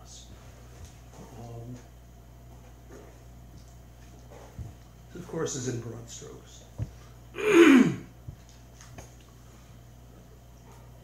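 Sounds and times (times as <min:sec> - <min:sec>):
man clearing his throat: 0:07.4 - 0:08.1.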